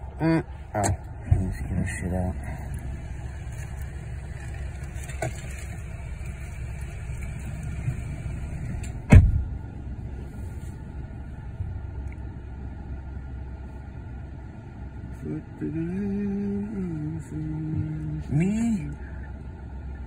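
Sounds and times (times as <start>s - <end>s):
car engine idling: 0.0s - 20.0s
car door thump: 8.9s - 9.5s.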